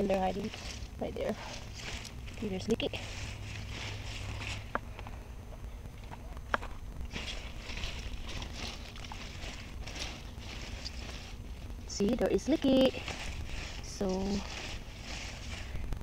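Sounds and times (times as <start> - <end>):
leaves rustling: 0.0 - 16.0
steady low rumble: 0.0 - 16.0.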